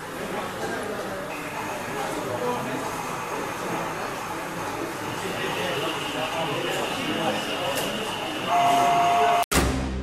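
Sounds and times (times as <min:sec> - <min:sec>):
crowd chatter: 0:00.0 - 0:09.4
steady steam whistle: 0:07.0 - 0:09.4.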